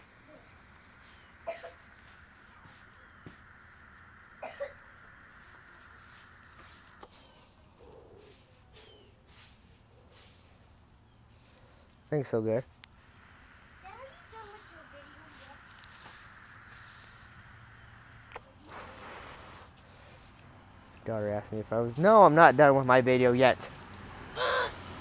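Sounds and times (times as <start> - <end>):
man puffing on vape: 0.0 - 7.9, 12.9 - 20.3.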